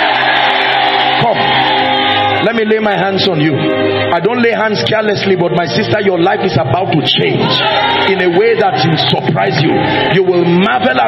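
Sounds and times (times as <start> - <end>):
keyboard chords: 0.0 - 11.0
preacher speaking: 2.4 - 11.0.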